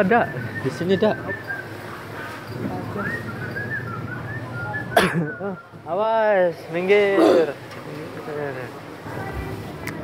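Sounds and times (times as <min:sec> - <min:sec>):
low background hum: 0:00.0 - 0:10.0
whistled tune: 0:03.0 - 0:05.8.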